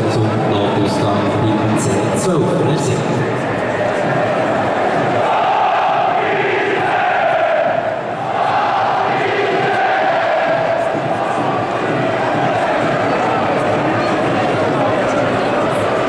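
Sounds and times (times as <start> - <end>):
crowd chanting in unison: 3.2 - 16.0.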